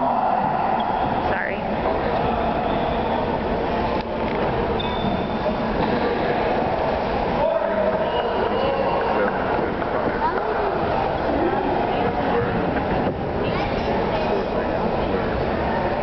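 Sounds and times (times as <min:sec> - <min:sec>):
echoing chatter of many voices: 0:00.0 - 0:16.0.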